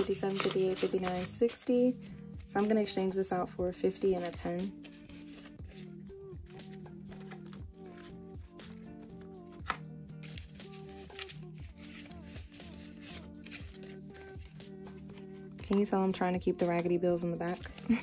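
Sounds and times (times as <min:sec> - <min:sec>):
paper banknotes rustling: 0:00.0 - 0:02.9, 0:04.2 - 0:06.0, 0:06.7 - 0:08.2, 0:09.6 - 0:15.8, 0:17.4 - 0:18.0
soft background music: 0:00.0 - 0:18.0.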